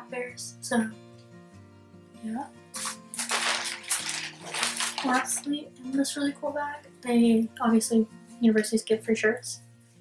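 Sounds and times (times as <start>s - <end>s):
soft background music: 0.0s - 10.0s
bag rustling and crinkling: 2.8s - 5.5s.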